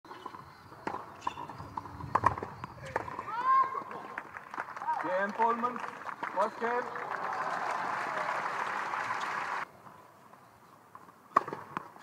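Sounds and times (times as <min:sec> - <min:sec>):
tennis ball bouncing on hard court: 0:11.3 - 0:11.9.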